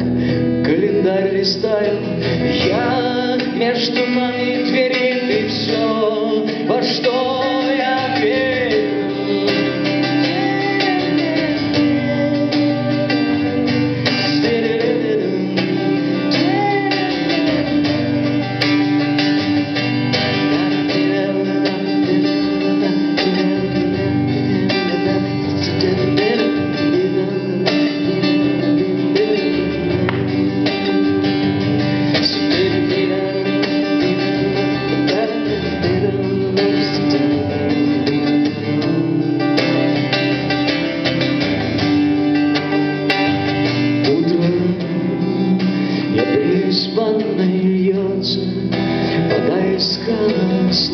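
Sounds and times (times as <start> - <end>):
acoustic guitar playing: 0.0 - 50.9.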